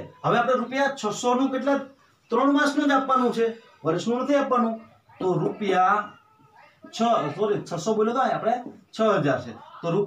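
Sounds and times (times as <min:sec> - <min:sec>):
man speaking: 0:00.0 - 0:06.2, 0:06.8 - 0:10.0.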